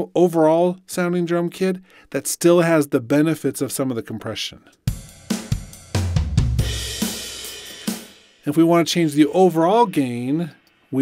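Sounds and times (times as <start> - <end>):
snare drum: 4.9 - 8.6.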